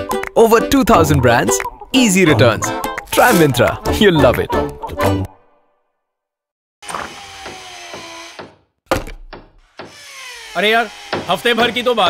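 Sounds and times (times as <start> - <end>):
power tool motor whine: 6.8 - 8.4, 9.8 - 11.2.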